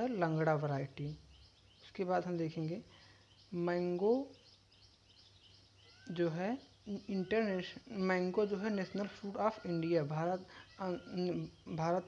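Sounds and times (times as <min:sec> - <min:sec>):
faint bird chirps: 0:00.0 - 0:12.0
person speaking: 0:06.0 - 0:12.0.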